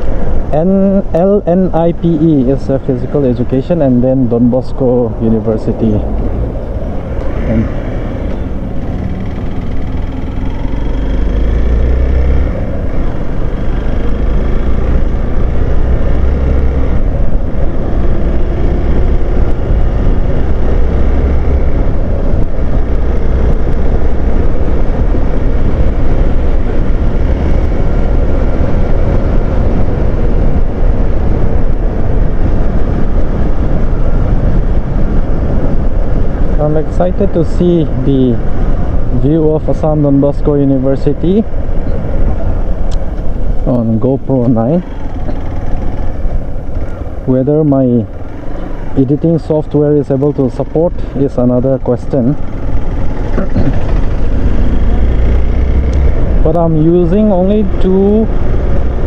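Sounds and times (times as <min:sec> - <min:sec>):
wind rumble on microphone: 0:00.0 - 0:59.0
motorcycle engine running: 0:06.0 - 0:59.0.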